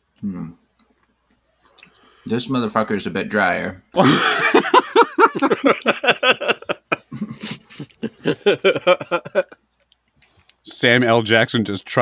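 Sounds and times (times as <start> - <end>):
people laughing: 4.0 - 9.6.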